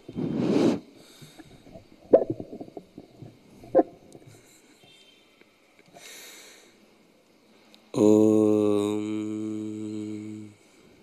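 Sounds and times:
man chanting a low note: 8.0s - 10.6s.

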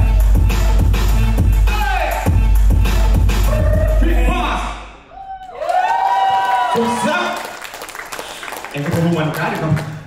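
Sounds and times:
dance music: 0.0s - 5.0s
person whooping: 3.5s - 4.2s, 5.1s - 7.2s.

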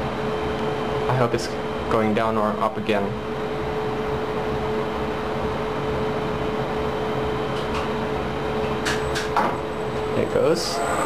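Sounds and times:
elevator machinery humming: 3.2s - 11.0s.

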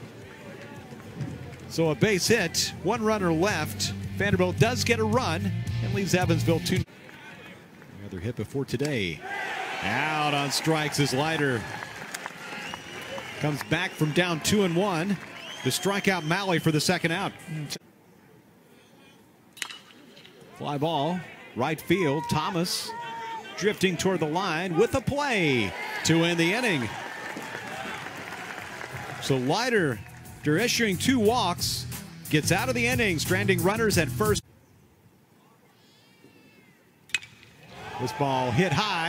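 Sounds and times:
faint stadium crowd noise: 0.0s - 39.0s
metal bat hitting baseball: 37.1s - 37.6s.

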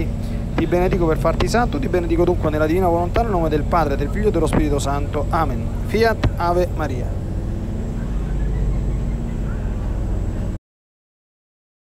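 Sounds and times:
low steady rumbling: 0.0s - 10.6s.

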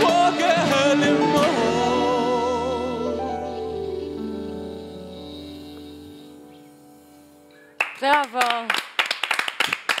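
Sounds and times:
people clapping: 7.8s - 10.0s.

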